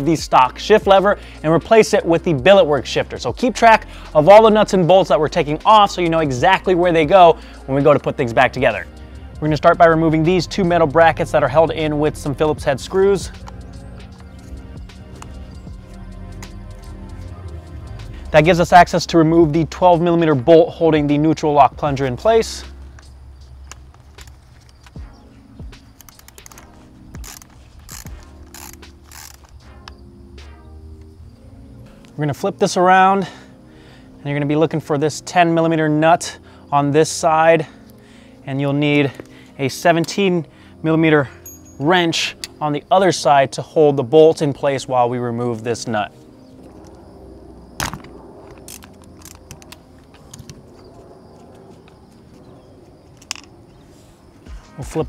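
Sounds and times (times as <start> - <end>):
socket ratchet clicking: 25.8 - 30.0, 48.5 - 50.6, 53.1 - 53.5.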